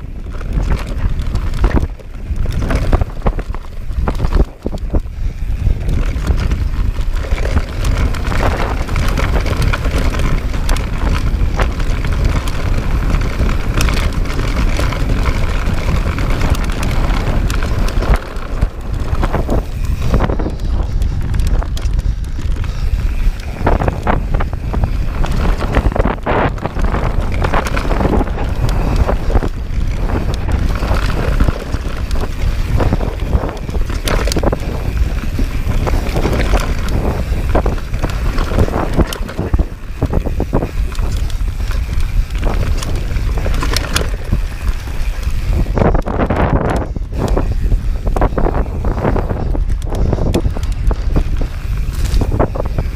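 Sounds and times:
bike rattles and knocks: 0.0 - 52.9
tyres rumbling over dirt: 0.0 - 52.9
wind buffeting microphone: 0.0 - 52.9.

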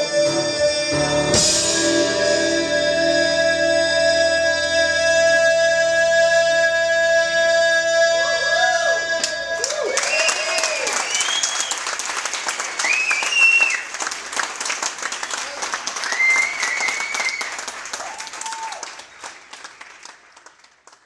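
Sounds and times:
audience cheering: 8.2 - 20.3
audience clapping: 9.2 - 21.0.

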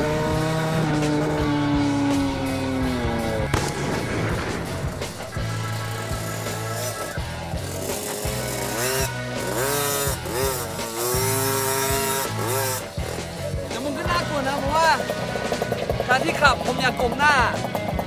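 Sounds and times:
small dirt bike engine revving: 0.0 - 3.7, 4.5 - 18.0
background music with beat: 0.0 - 18.0.

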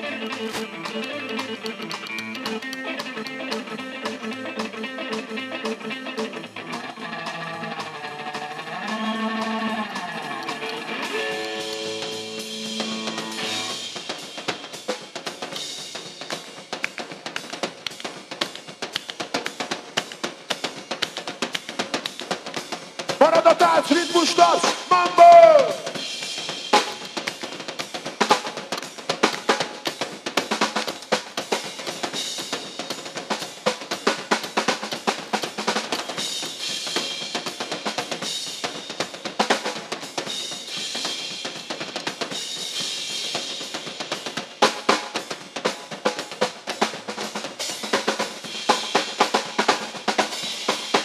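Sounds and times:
electric guitar: 0.0 - 14.3
drum kit: 0.0 - 51.0.

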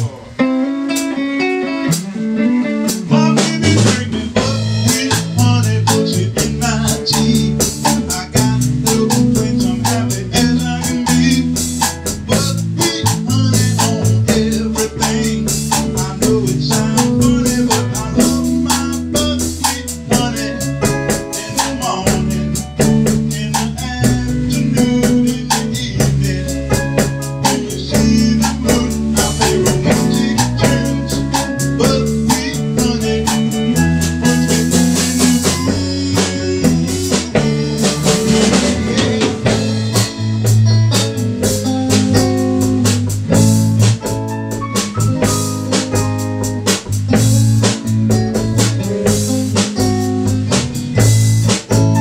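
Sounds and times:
bass guitar fill: 0.0 - 52.0
live band playing rnb groove: 0.0 - 52.0.

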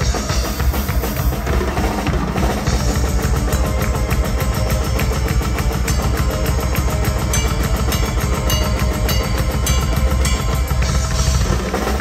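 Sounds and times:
metal band playing: 0.0 - 12.0
electric bass: 2.8 - 12.0.

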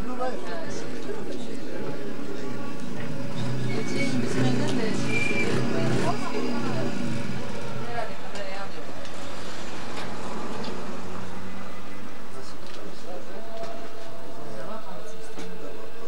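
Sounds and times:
indistinct voices: 0.0 - 16.0.

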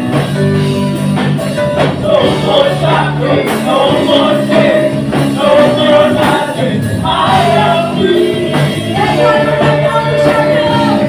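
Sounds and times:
amplified drums: 0.0 - 11.0
bass guitar: 0.0 - 11.0
keyboard: 0.0 - 11.0
singers singing together: 1.7 - 11.0.

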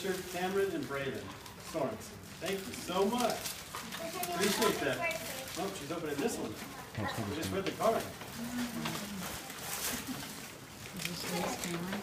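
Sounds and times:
tissue paper rustling: 0.0 - 12.0
low voice murmur: 8.4 - 9.6.

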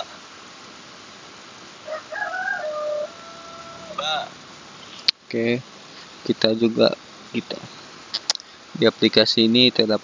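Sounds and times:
recorded voice pronouncing letter: 3.9 - 4.4.

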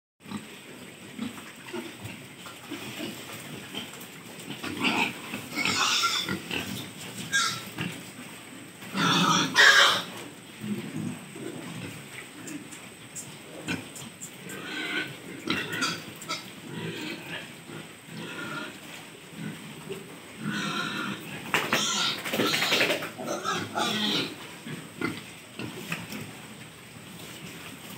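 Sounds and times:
pigs grunting: 1.2 - 8.1, 8.9 - 12.8, 13.4 - 26.3.

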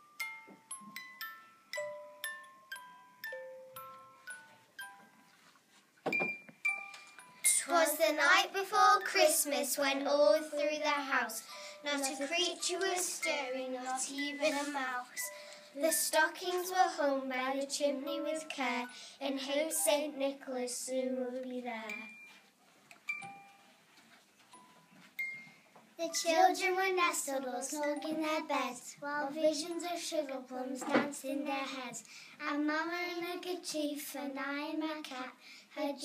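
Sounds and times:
small bell-like chime: 0.0 - 5.5, 6.1 - 7.8, 21.8 - 22.5, 23.1 - 26.3.

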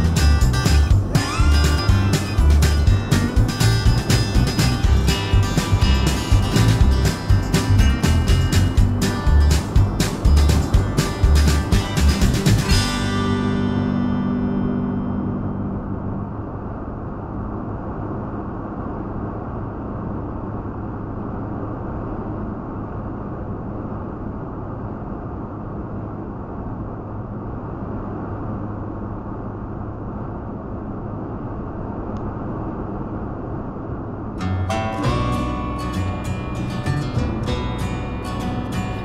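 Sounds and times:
music: 0.0 - 16.1, 34.4 - 39.0
guitar music: 0.0 - 16.6, 34.4 - 39.0
low engine drone: 0.0 - 39.0
road and tyre noise: 0.0 - 39.0.

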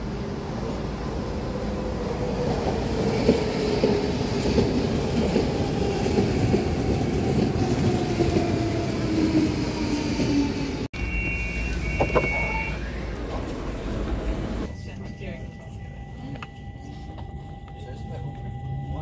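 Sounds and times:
two-note door signal tone: 11.0 - 13.1.

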